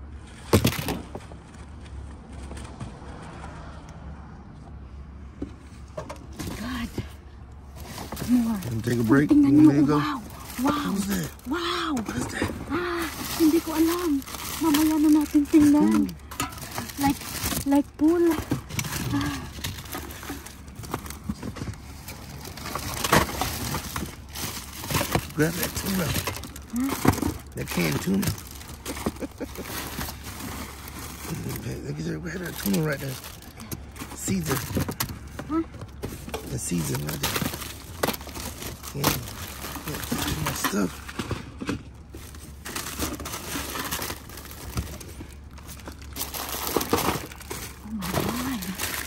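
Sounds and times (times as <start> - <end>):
plastic wrappers crinkling: 7.7 - 49.0
voices talking: 8.2 - 19.5.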